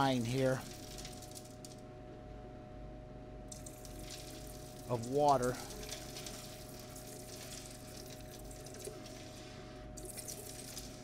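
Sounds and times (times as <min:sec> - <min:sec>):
steady hum: 0:00.0 - 0:11.0
water trickling and splashing: 0:03.5 - 0:09.4, 0:10.0 - 0:11.0.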